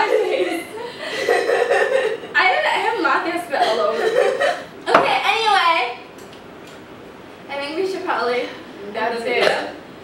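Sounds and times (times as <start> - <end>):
young women laughing: 0.0 - 2.4, 3.6 - 5.0.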